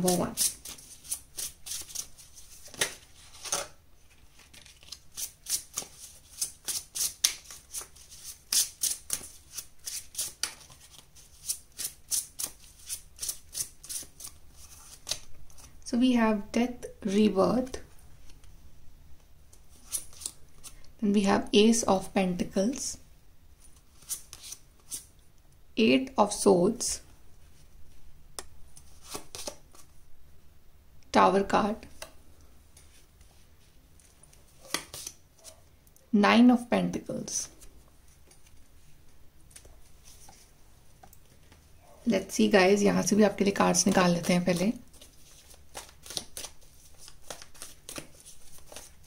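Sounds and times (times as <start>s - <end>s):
cards being shuffled: 0.1s - 15.8s, 23.8s - 25.1s, 28.8s - 29.9s, 43.4s - 49.0s.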